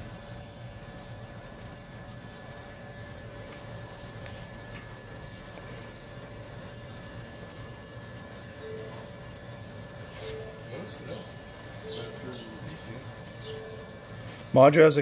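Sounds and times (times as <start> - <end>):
low background hum: 0.0 - 15.0
faint high tones: 10.1 - 14.4.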